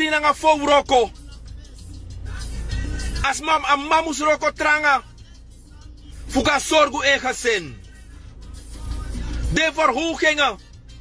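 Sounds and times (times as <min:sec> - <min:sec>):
vehicle rumble inside car: 0:00.0 - 0:11.0.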